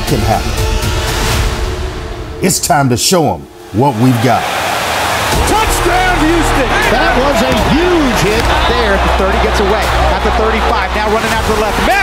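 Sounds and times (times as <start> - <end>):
voices shouting: 3.7 - 12.0.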